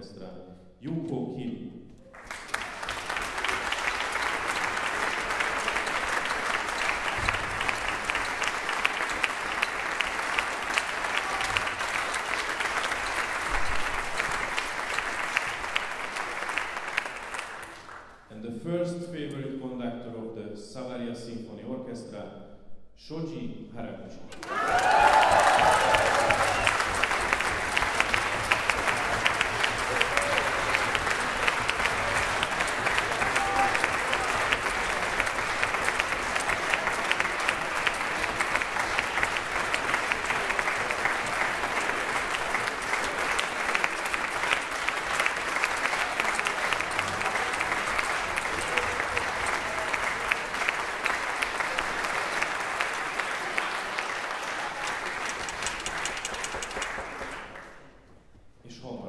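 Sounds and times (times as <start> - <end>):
audience applauding: 2.1 - 18.2, 24.3 - 58.0.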